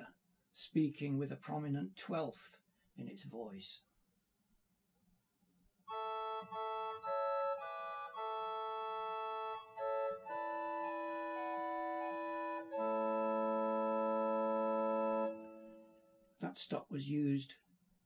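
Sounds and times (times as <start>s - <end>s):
pipe organ chords: 5.9s - 16.2s.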